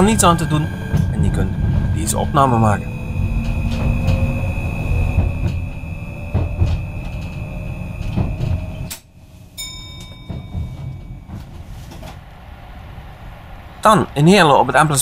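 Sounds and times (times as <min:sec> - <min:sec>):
traction motor whine: 0:00.0 - 0:09.2
constant high whine: 0:00.0 - 0:15.0
train low rumble: 0:00.0 - 0:15.0.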